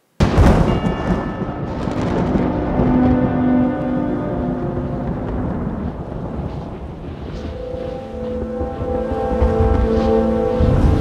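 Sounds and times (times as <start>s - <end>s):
deep rumbling hit: 0.2s - 11.0s
held musical notes: 0.4s - 11.0s.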